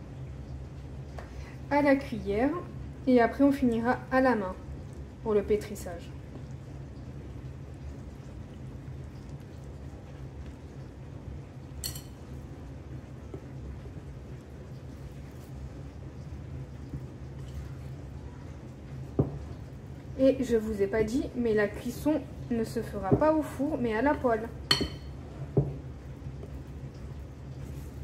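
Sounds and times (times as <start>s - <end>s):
dishwasher humming: 9.1s - 27.6s
spoon stirring wet dough: 11.8s - 19.7s
spoon clicking on glass bowl: 24.7s - 25.1s.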